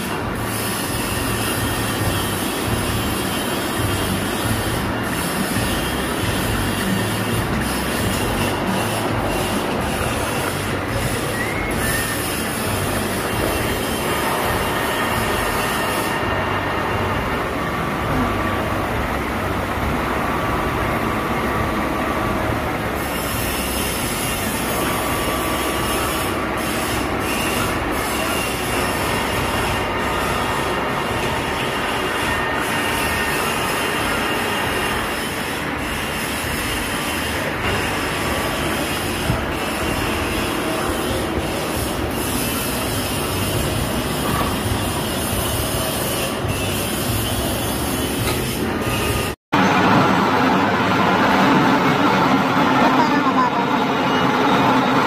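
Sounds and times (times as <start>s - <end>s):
machine running hum: 0.0s - 55.0s
milling machine cutting metal: 0.0s - 55.0s.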